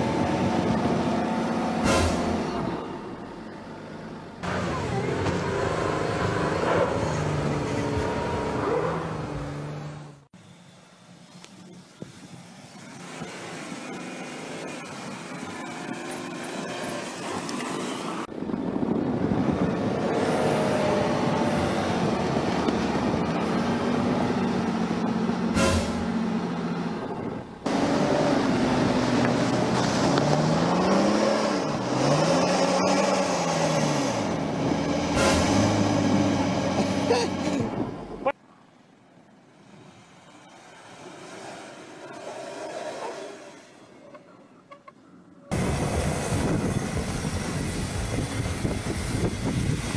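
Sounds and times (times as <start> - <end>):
engine revving in snow: 4.4 - 10.3, 19.5 - 27.0, 27.6 - 38.0.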